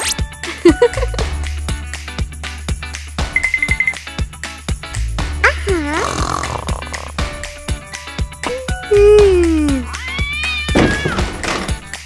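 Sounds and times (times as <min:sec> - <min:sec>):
background music with steady beat: 0:00.0 - 0:05.5, 0:06.7 - 0:12.0
cat meow sound effect: 0:08.9 - 0:11.2.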